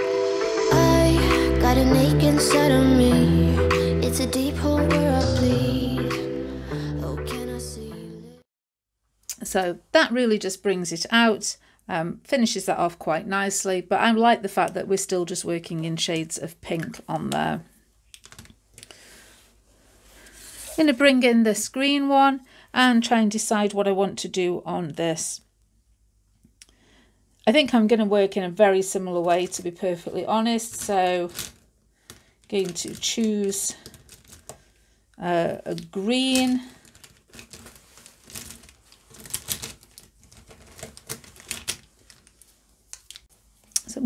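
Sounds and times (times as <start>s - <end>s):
plastic pens clacking together: 30.6s - 34.6s.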